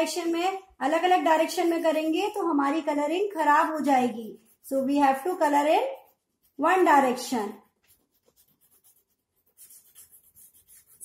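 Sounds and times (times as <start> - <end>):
chalk scratching on blackboard: 0.0 - 11.0.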